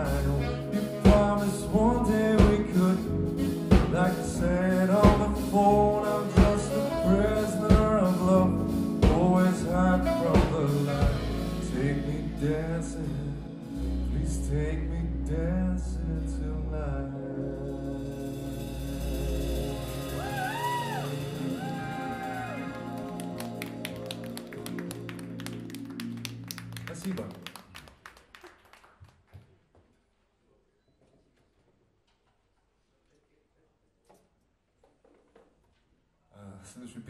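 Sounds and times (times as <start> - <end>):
live band playing: 0.0 - 14.6, 17.5 - 27.4
person singing: 0.0 - 23.9.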